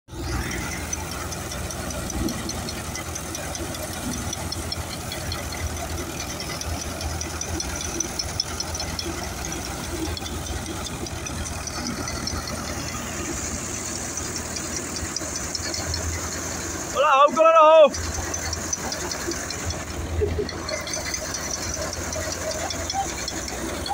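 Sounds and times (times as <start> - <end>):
threshing machine clatter: 0.1 - 23.9
tractor engine running under load: 0.1 - 23.9.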